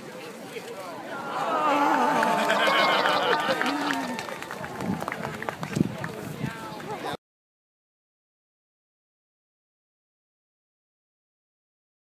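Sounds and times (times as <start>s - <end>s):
crowd shouting: 1.0s - 5.0s.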